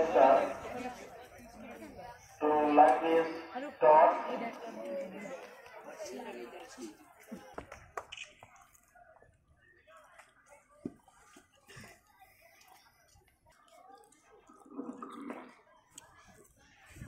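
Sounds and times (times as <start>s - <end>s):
faint distant voices: 0.0s - 17.0s.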